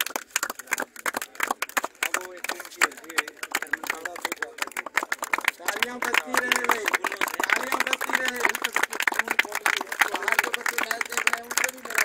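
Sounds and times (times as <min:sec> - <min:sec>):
people clapping: 0:00.0 - 0:12.0.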